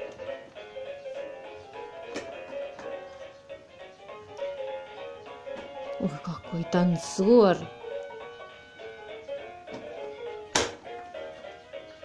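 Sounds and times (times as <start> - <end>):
electronic toy melody: 0.0 - 12.0.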